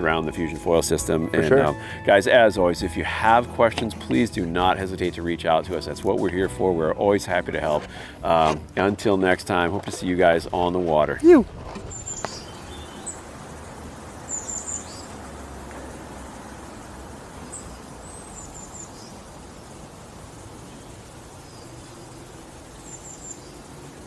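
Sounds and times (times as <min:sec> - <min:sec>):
small birds chirping: 0:11.8 - 0:24.0.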